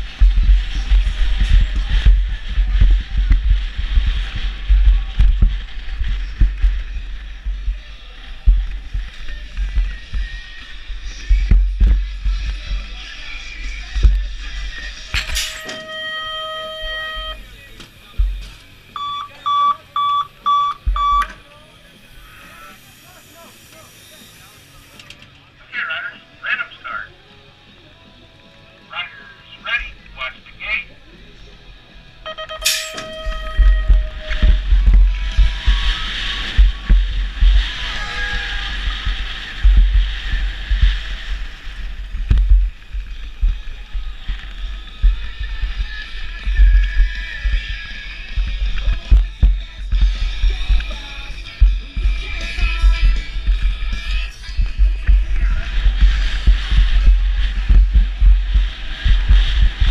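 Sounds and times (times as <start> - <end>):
bike rolling with wind rush: 0.0 - 19.0, 33.1 - 59.9
starting gate tone and beeps: 15.4 - 17.7, 19.0 - 21.4, 32.3 - 34.5.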